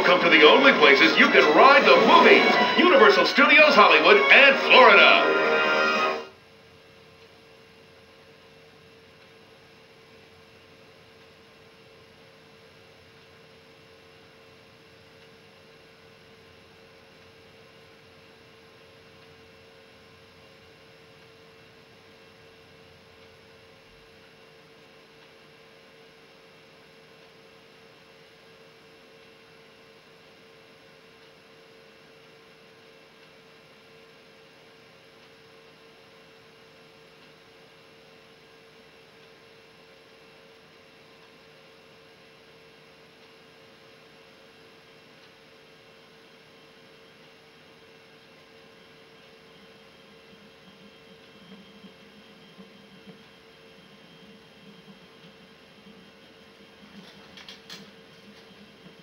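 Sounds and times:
faint tape hum with hiss: 0.0s - 59.0s.

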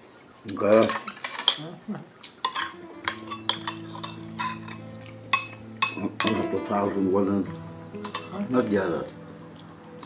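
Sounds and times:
cutlery clinking on plates: 0.8s - 1.6s, 2.4s - 6.5s, 8.0s - 8.4s.

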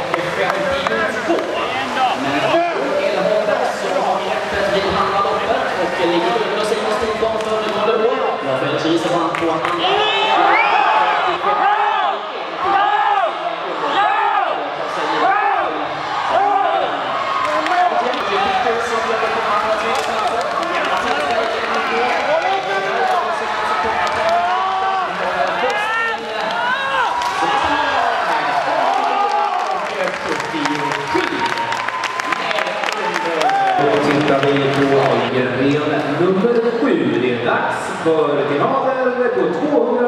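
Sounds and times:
crowd noise: 0.0s - 40.0s
spectators shouting and cheering: 9.6s - 35.4s.

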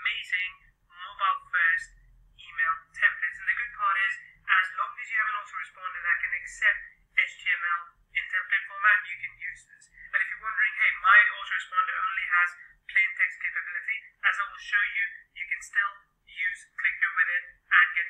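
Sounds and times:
person talking through telephone: 0.0s - 18.0s.

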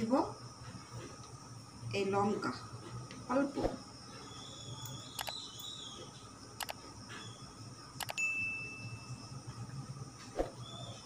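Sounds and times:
mouse clicks: 4.8s - 5.4s, 8.0s - 8.2s.

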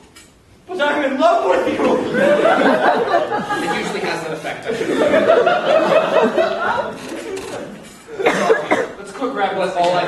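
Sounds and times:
person coughing: 8.1s - 9.0s.

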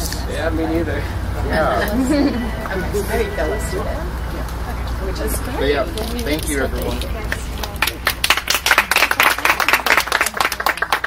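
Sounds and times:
people applauding: 7.3s - 11.0s.

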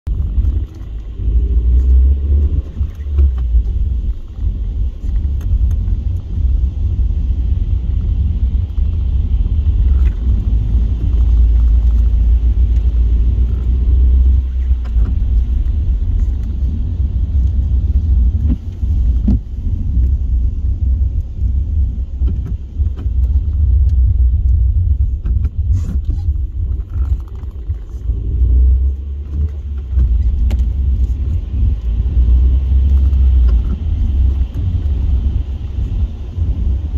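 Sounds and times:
car driving on wet road: 0.1s - 36.9s.

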